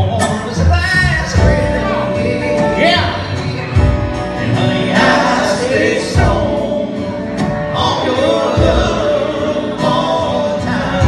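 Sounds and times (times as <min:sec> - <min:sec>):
acoustic guitar: 0:00.0 - 0:11.0
men singing: 0:00.0 - 0:11.0
upright bass: 0:00.0 - 0:11.0.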